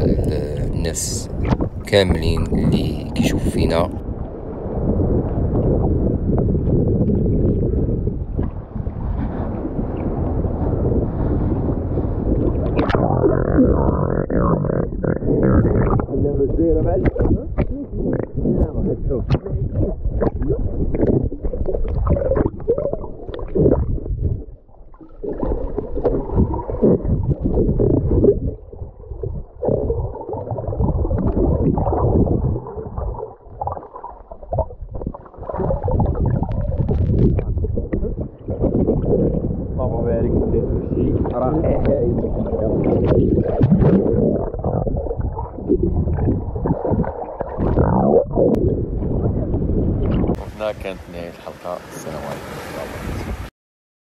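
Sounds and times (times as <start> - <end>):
underwater gurgling and bubbling: 0.0 - 50.6
small water splashes: 24.7 - 39.1.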